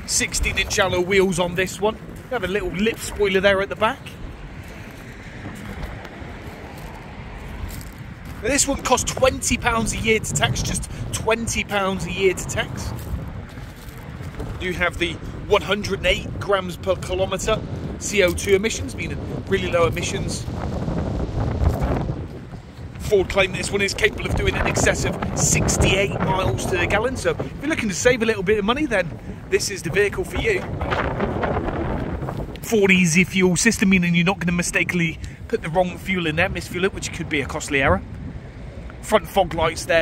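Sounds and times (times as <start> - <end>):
wind rumbling on microphone: 0.0 - 40.0.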